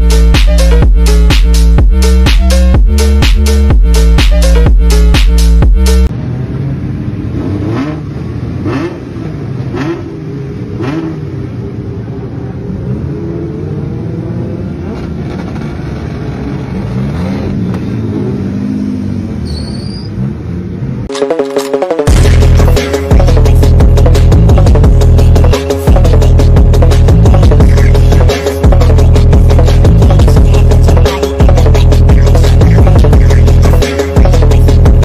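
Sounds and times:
electronic music: 0.0s - 6.1s, 21.1s - 35.0s
car engines revving: 5.9s - 21.1s, 22.0s - 35.0s.

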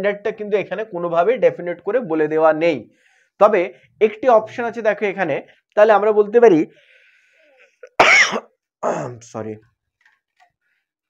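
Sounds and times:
man clearing his throat: 7.8s - 9.2s
man coughing: 7.8s - 9.2s.

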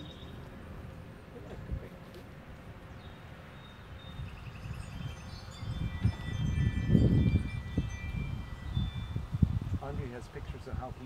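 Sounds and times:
wind buffeting microphone: 4.0s - 11.0s.

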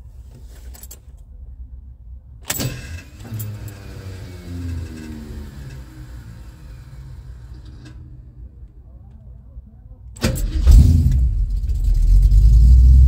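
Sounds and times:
car engine starting and idling: 0.0s - 13.0s.

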